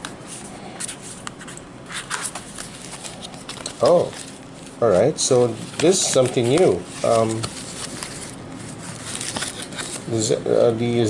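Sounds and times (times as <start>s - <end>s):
cardboard packaging rustling: 2.0s - 10.2s.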